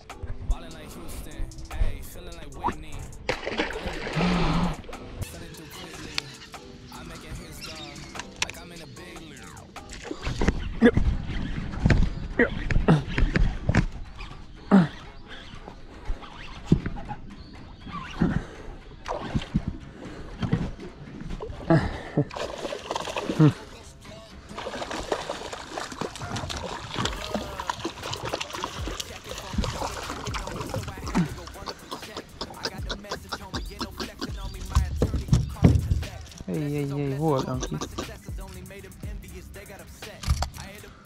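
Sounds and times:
fish splashing and thrashing: 0:02.6 - 0:38.6.

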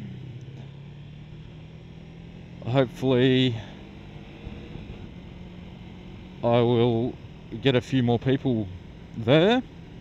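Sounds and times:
motorcycle engine running: 0:00.0 - 0:10.0
road and wind noise: 0:00.0 - 0:10.0.

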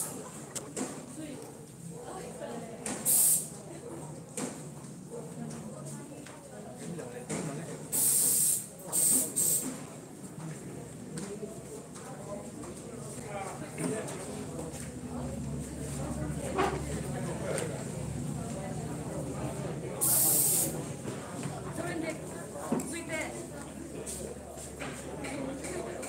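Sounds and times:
crowd chatter: 0:00.0 - 0:26.0
aerosol spray can hissing: 0:03.1 - 0:03.5, 0:08.0 - 0:09.7, 0:20.0 - 0:20.8.

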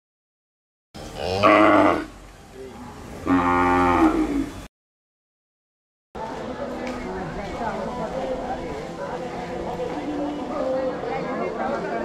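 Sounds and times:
cow mooing: 0:01.2 - 0:02.1, 0:03.2 - 0:04.6.

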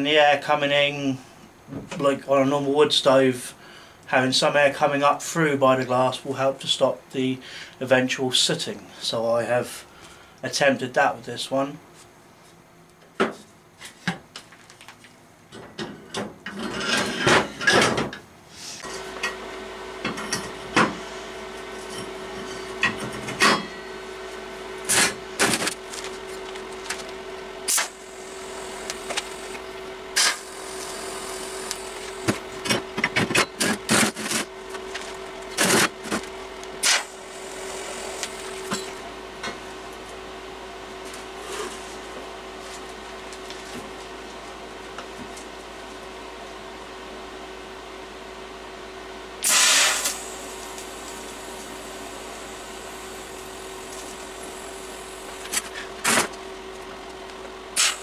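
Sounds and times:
welder humming: 0:18.7 - 0:46.0, 0:49.3 - 0:58.0.

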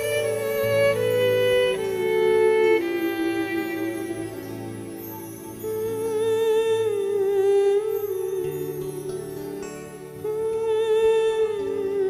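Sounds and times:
woman humming into a microphone: 0:00.0 - 0:12.0.

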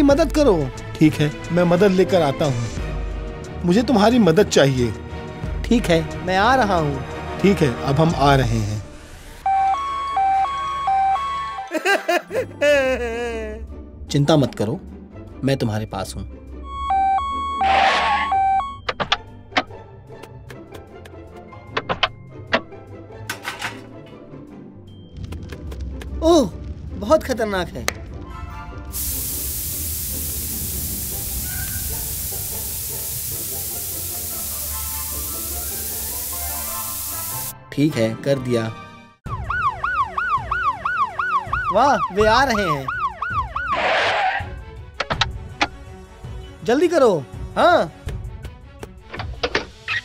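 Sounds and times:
two-tone emergency siren: 0:09.4 - 0:11.8, 0:16.6 - 0:18.9, 0:39.2 - 0:44.1
whooshing hiss: 0:28.9 - 0:37.6.

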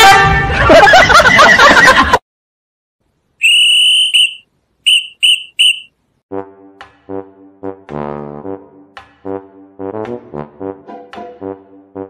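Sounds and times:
high-pitched whistle toots: 0:03.4 - 0:05.9.

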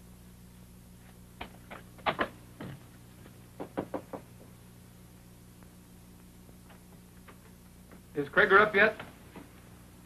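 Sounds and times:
knocking on a door: 0:03.6 - 0:04.5.

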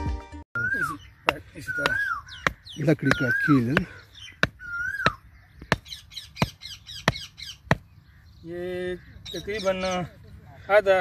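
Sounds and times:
small birds chirping: 0:00.6 - 0:11.0
hammer knocking stake into soil: 0:01.2 - 0:07.9.

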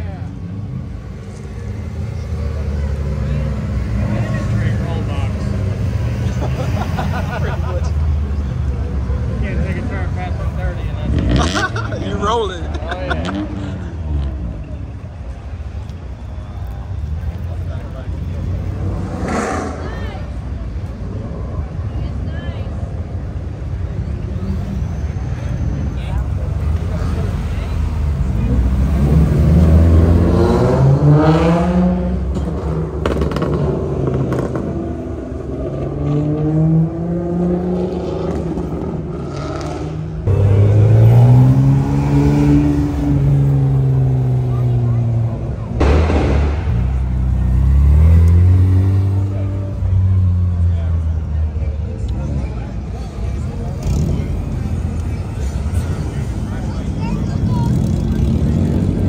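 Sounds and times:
car engines revving: 0:00.0 - 0:59.0
sudden loud blast: 0:45.8 - 0:47.3.

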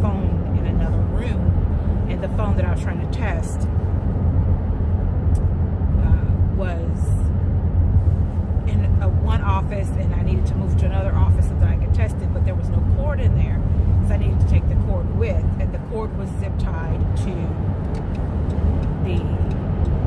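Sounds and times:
woman talking: 0:00.0 - 0:03.6, 0:06.0 - 0:07.3, 0:08.7 - 0:17.6, 0:19.0 - 0:19.6
road and engine drone: 0:00.0 - 0:20.0.

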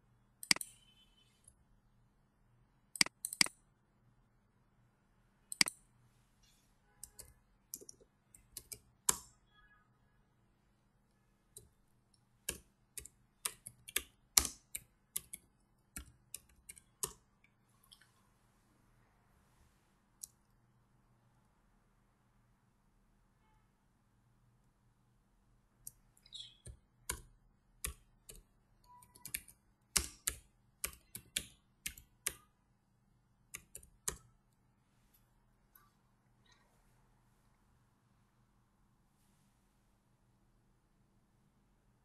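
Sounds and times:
keyboard typing: 0:00.4 - 0:00.9, 0:02.9 - 0:03.6, 0:05.5 - 0:05.8, 0:07.0 - 0:09.4, 0:11.5 - 0:17.4, 0:25.8 - 0:32.6, 0:33.4 - 0:34.5.

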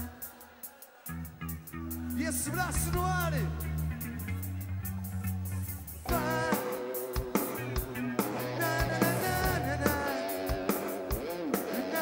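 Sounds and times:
live rock band playing: 0:00.0 - 0:12.0
bass notes: 0:01.1 - 0:06.6, 0:07.2 - 0:11.2
electric guitar: 0:01.2 - 0:12.0
held melody line: 0:01.6 - 0:12.0.

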